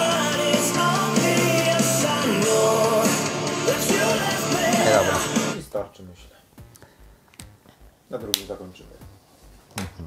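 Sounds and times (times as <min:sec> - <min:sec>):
man murmuring: 0:04.7 - 0:05.6.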